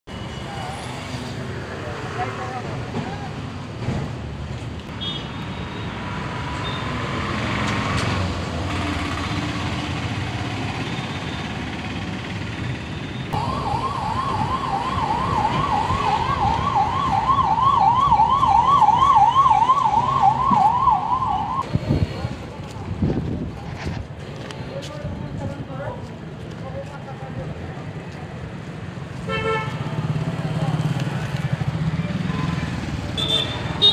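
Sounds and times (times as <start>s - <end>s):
busy street traffic: 0.0s - 33.9s
emergency siren yelping: 13.4s - 21.6s.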